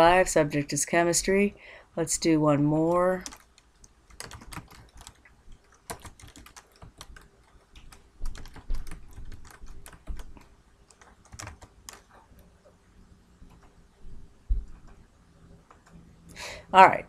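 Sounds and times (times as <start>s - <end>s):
computer keyboard typing: 2.8s - 12.2s.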